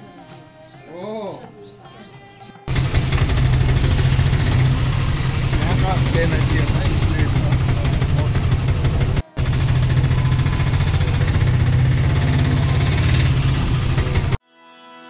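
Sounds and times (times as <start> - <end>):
auto-rickshaw engine rumble: 2.7 - 14.4
road noise: 2.7 - 14.4.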